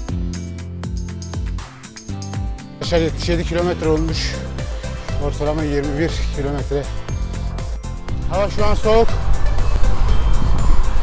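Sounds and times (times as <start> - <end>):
background music: 0.0 - 11.0
wind on microphone: 8.1 - 11.0.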